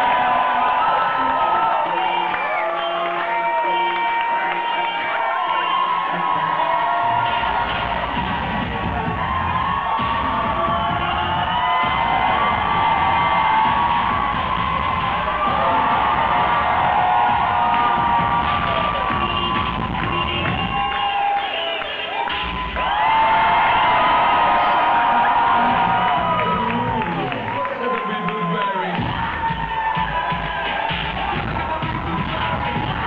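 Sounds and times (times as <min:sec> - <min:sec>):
crowd cheering and whooping: 0:00.0 - 0:33.0
loud dance music: 0:00.0 - 0:33.0
deep bass: 0:06.5 - 0:20.9, 0:22.3 - 0:27.6, 0:29.0 - 0:33.0.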